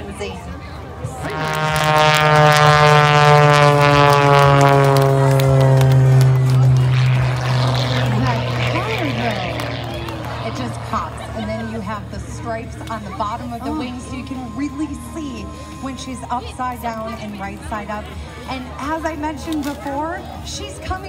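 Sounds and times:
faint crowd voices: 0:00.0 - 0:21.0
propeller plane engine climbing: 0:00.0 - 0:21.0.

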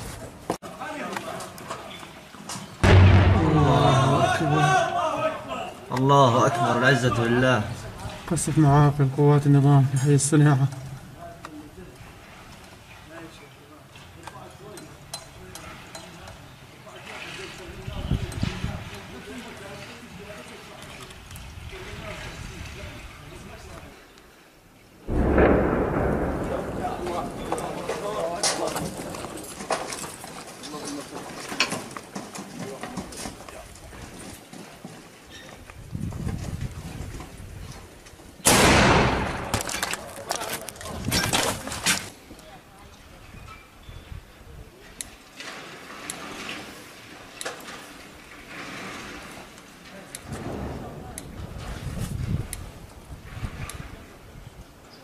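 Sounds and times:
loud sudden bang: 0:02.8 - 0:04.8, 0:25.1 - 0:28.4
mortar firing blast: 0:02.8 - 0:04.8, 0:25.1 - 0:29.1, 0:38.4 - 0:39.8.

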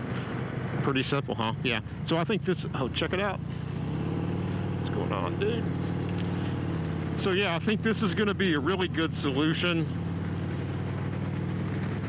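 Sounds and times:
motorcycle engine cruising: 0:00.0 - 0:12.0
road noise: 0:00.0 - 0:12.0.

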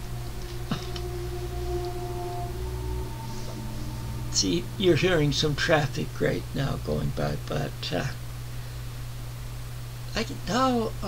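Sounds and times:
higher tone: 0:00.0 - 0:08.6.

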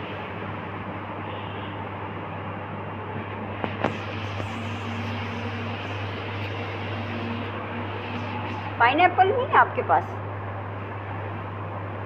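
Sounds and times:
fan noise: 0:00.0 - 0:12.0
low machine hum: 0:00.0 - 0:12.0
woman speaking: 0:08.8 - 0:10.2.

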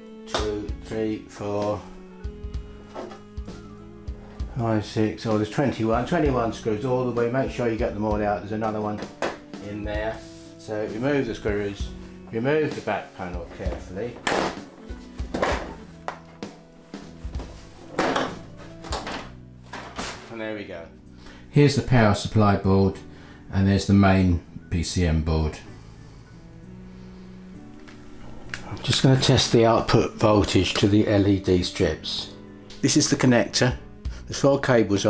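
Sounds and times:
soft background music: 0:00.0 - 0:35.0
plastic cover scraping and handling: 0:17.1 - 0:20.4.

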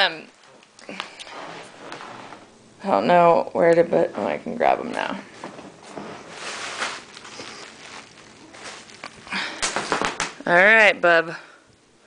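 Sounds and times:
rustling and handling noise: 0:00.3 - 0:02.6, 0:03.8 - 0:10.9.

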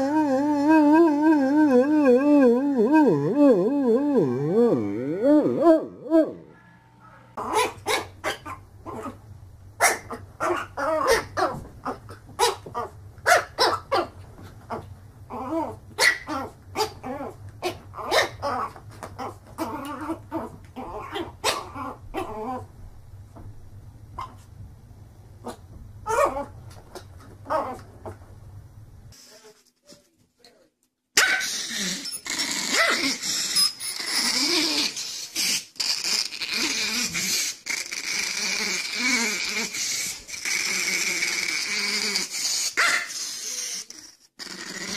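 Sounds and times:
small dog growling: 0:00.0 - 0:09.2, 0:14.7 - 0:22.7, 0:31.3 - 0:44.9
dog yapping: 0:05.7 - 0:09.1, 0:09.8 - 0:11.6, 0:16.0 - 0:17.0, 0:17.6 - 0:20.2, 0:31.2 - 0:31.9, 0:32.7 - 0:35.0, 0:42.8 - 0:43.6
dog yelp: 0:42.8 - 0:43.2.

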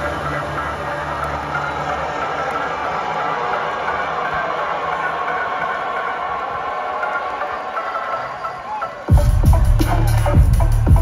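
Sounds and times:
droning electronic music: 0:00.0 - 0:11.0.

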